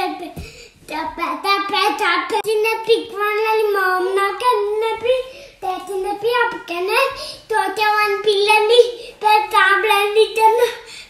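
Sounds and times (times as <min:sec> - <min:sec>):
boy singing in high voice: 0:00.0 - 0:10.9.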